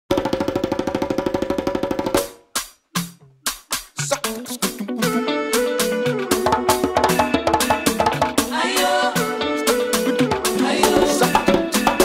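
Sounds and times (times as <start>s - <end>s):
fast drum roll: 0.1s - 2.4s.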